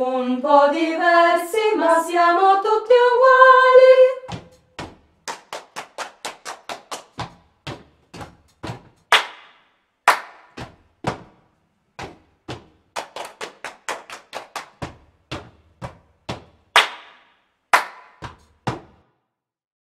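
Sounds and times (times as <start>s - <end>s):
deep thuds: 4.3s - 5.2s
hand claps and slaps: 4.3s - 11.4s, 12.0s - 19.1s.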